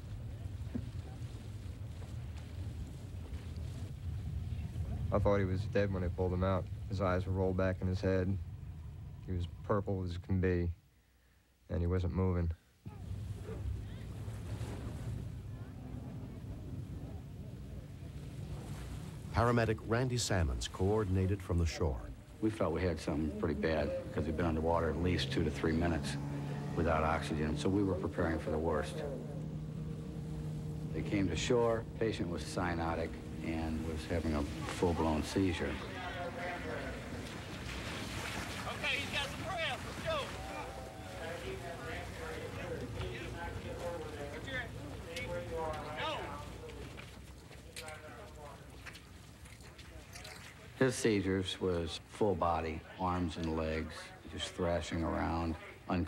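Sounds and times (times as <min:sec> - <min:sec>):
wind on microphone: 0:00.0 - 0:05.8
wind rumble: 0:00.0 - 0:09.7, 0:12.9 - 0:21.2
boat engines rumbling: 0:00.0 - 0:10.9, 0:12.8 - 0:56.0
faint distant voices: 0:12.8 - 0:56.0
high shouted calls: 0:38.5 - 0:46.4.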